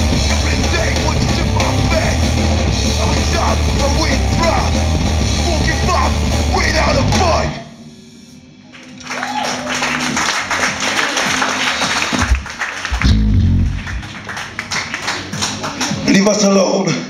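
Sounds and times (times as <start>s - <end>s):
crowd clapping and cheering: 0.0s - 1.2s, 8.7s - 16.2s
punk band playing: 0.0s - 7.5s, 9.9s - 14.8s
stray bass notes: 0.0s - 7.6s, 12.2s - 14.2s
low drum thump: 12.2s - 14.0s.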